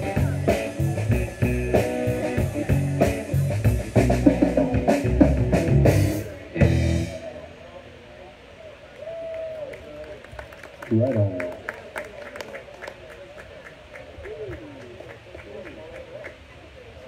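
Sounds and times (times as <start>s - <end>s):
drum kit: 0.0s - 7.4s
bass guitar: 0.0s - 7.6s
electric guitar: 0.0s - 7.6s.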